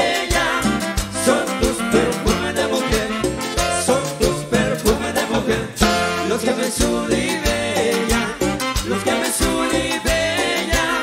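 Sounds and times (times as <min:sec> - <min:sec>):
live band playing instrumental: 0:00.0 - 0:11.0
steady percussion beat: 0:00.0 - 0:11.0.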